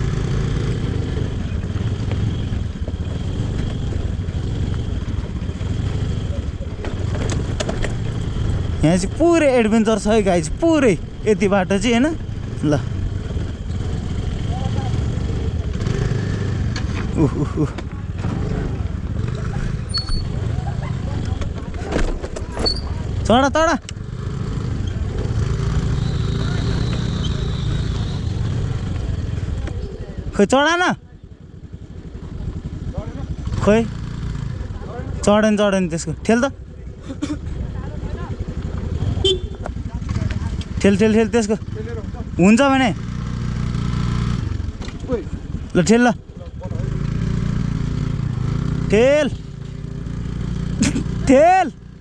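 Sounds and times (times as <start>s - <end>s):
motor scooters running: 0.0s - 52.0s.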